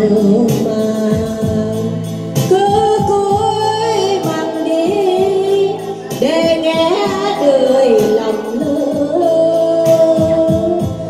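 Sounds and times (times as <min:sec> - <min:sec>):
electronic keyboard accompaniment: 0:00.0 - 0:11.0
woman singing into microphone: 0:00.0 - 0:11.0.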